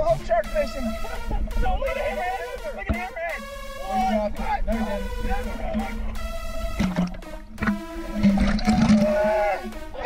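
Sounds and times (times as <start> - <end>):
background music: 0.0 - 10.0
water splashing and churning: 0.0 - 10.0.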